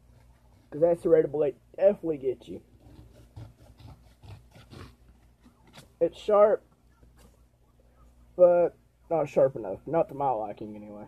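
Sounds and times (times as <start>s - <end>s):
serrated knife sawing paper: 2.6s - 6.0s.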